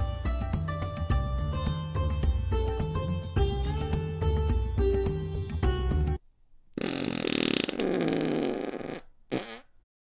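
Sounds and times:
comic fart sound effect: 6.8s - 9.8s.

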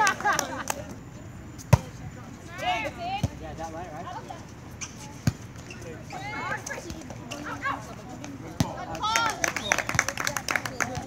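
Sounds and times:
faint players' voices: 0.0s - 11.0s.

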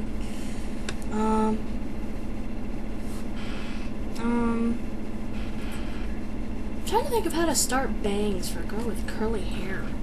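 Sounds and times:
steady background hum and hiss: 0.0s - 10.0s.

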